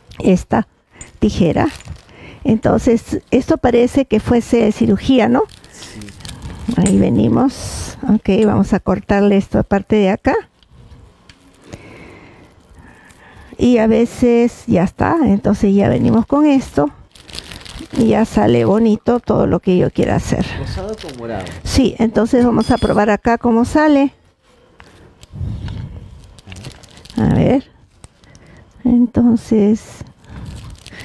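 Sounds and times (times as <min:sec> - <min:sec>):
piping bag squeezing: 0:00.9 - 0:08.8, 0:10.4 - 0:14.5, 0:15.4 - 0:21.7, 0:24.6 - 0:28.8, 0:30.0 - 0:31.0
plastic wrap rustling: 0:00.9 - 0:22.1, 0:24.4 - 0:28.8, 0:29.7 - 0:31.0.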